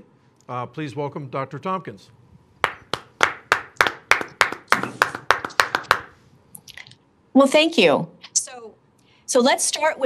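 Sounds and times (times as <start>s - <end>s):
person clapping hands: 2.6s - 6.2s.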